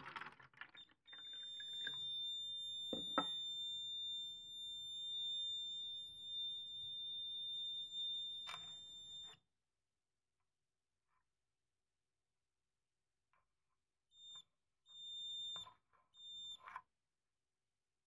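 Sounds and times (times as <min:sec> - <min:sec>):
high-pitched buzzer tone: 0:01.2 - 0:09.4, 0:14.2 - 0:16.8.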